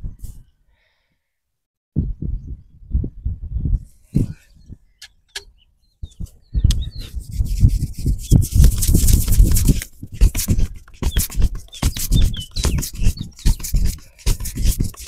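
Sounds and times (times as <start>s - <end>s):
muffled low thumps: 2.0s - 10.8s
hands scrubbing hair: 7.3s - 15.0s.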